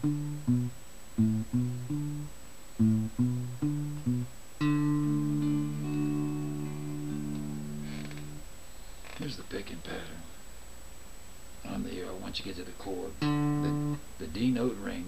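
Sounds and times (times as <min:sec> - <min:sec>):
electric guitar chord ringing: 0:00.0 - 0:08.4, 0:13.2 - 0:14.0
electric guitar plucked notes: 0:00.0 - 0:08.4, 0:13.2 - 0:14.0.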